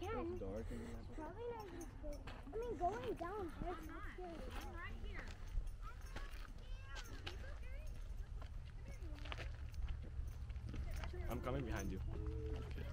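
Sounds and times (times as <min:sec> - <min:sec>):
footsteps on gravel: 0:02.2 - 0:12.9.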